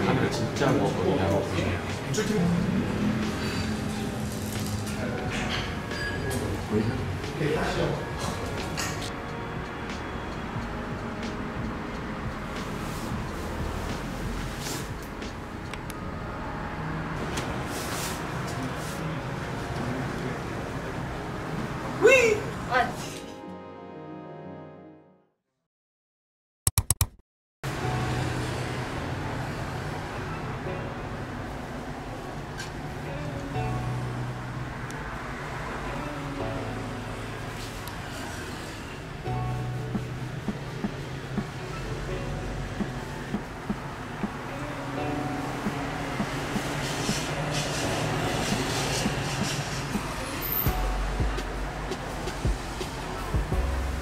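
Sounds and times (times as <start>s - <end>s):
music with low bass line: 7.0s - 16.0s, 39.3s - 54.0s
computer mouse clicks: 26.7s - 27.2s.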